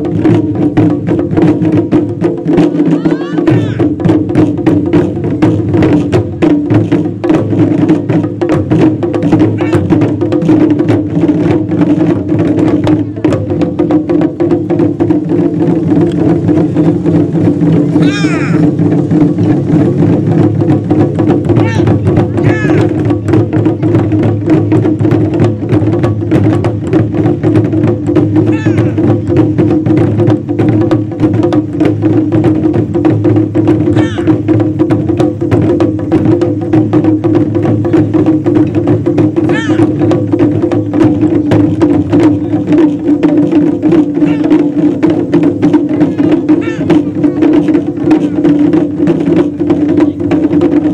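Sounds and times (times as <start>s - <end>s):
ensemble of drums: 0.0s - 50.9s.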